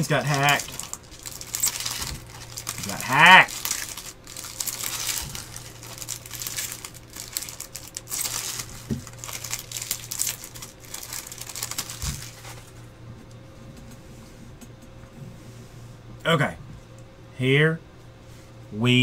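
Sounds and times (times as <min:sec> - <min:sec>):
foil wrappers crinkling: 0:00.0 - 0:12.8.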